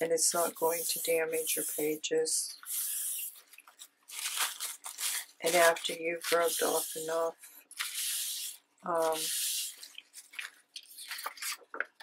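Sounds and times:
cloth rubbing across paper: 0:02.8 - 0:11.3
paper rustling: 0:03.3 - 0:12.0.

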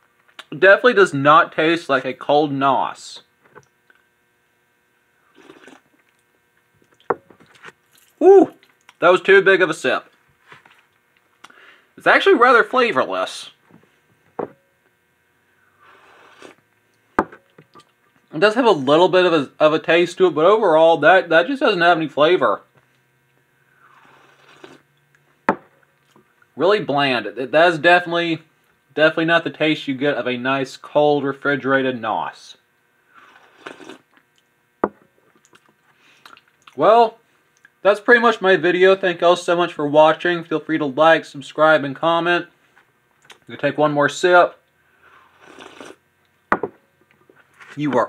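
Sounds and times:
faint electrical hum: 0:00.0 - 0:48.0
person slurping drink: 0:05.2 - 0:05.9, 0:15.8 - 0:16.6, 0:23.8 - 0:24.9, 0:33.1 - 0:34.1, 0:45.1 - 0:46.0
bowl knocking on counter: 0:34.8 - 0:35.0, 0:46.5 - 0:46.8.

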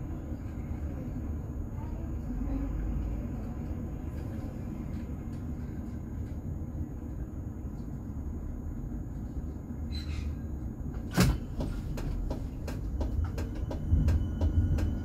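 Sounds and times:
tram equipment rumble: 0:00.0 - 0:15.0.

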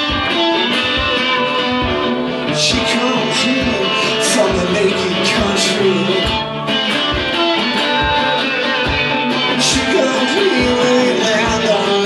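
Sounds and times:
resonator guitar strummed and picked: 0:00.0 - 0:12.0
steady low beat: 0:01.0 - 0:11.8.

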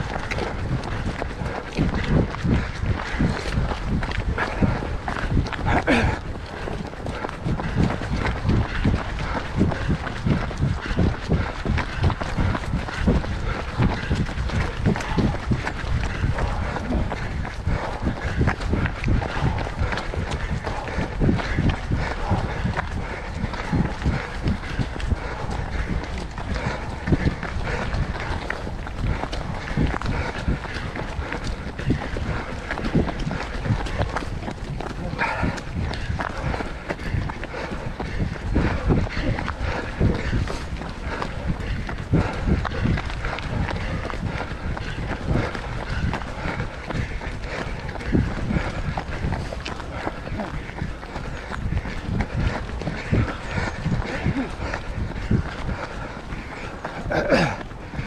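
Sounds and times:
running footsteps on gravel: 0:00.0 - 0:58.0.

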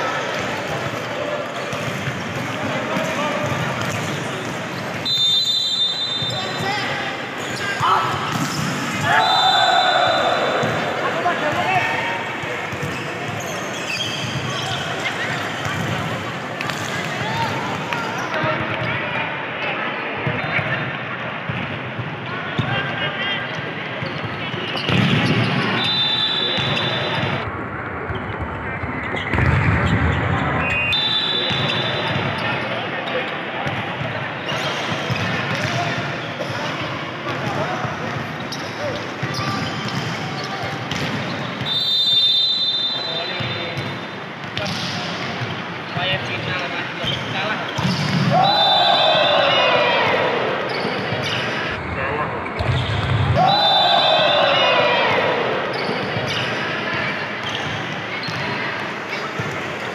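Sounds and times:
people talking and shouting: 0:00.0 - 0:59.9
volleyball hit and bouncing: 0:07.7 - 0:09.3, 0:28.1 - 0:32.3, 0:52.5 - 0:53.5.

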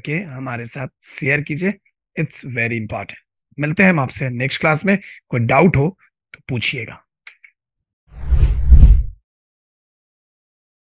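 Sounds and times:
whoosh transition: 0:08.2 - 0:09.2
deep bass rumble: 0:08.3 - 0:09.2.

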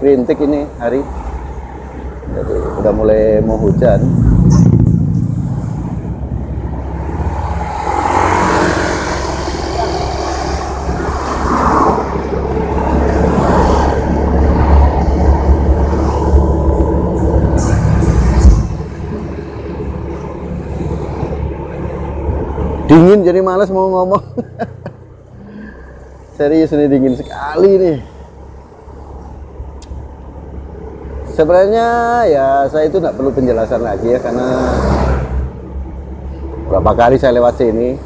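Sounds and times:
passing traffic: 0:00.0 - 0:38.0
wind and engine rumble: 0:00.0 - 0:38.0.

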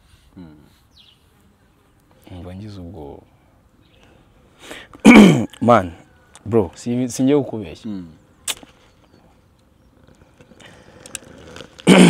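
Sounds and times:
man breathing in: 0:04.6 - 0:05.0.

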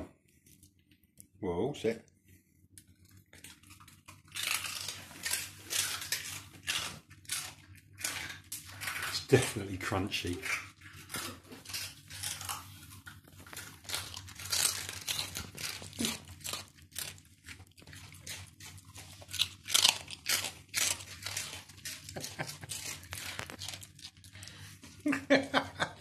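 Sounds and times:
dogs chewing crunchy food: 0:02.8 - 0:26.0.

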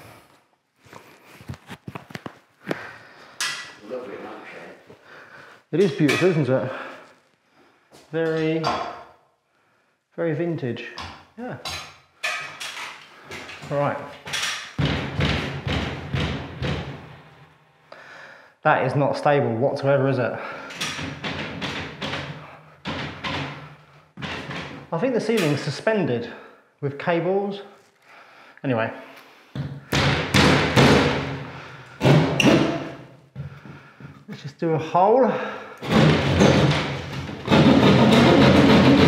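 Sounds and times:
fist thumping on ceiling panel: 0:29.6 - 0:31.4.

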